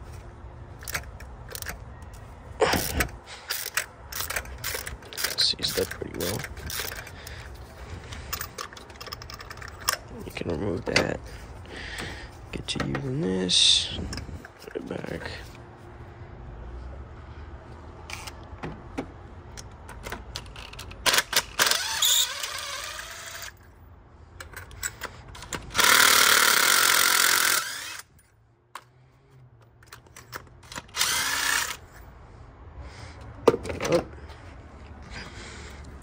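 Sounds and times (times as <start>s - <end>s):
tools clicking and knocking: 0.8s - 11.2s, 12.0s - 13.1s, 18.1s - 23.6s, 24.4s - 29.0s, 29.6s - 31.9s, 33.2s - 34.2s
impact driver whirring: 21.1s - 23.6s, 25.5s - 28.1s, 30.6s - 31.9s.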